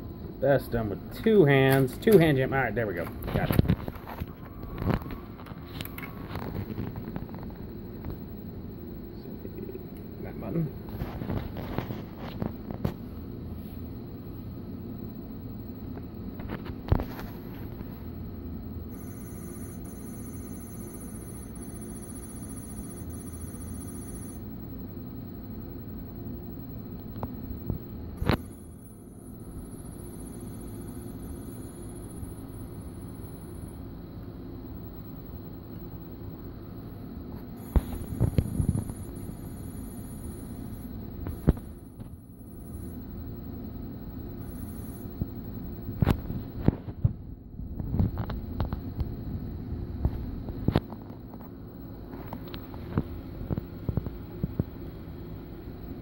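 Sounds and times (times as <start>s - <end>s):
video recorder motor hum: 3.2s - 8.4s, 18.8s - 24.9s, 26.9s - 33.9s, 37.3s - 43.6s, 44.4s - 51.5s.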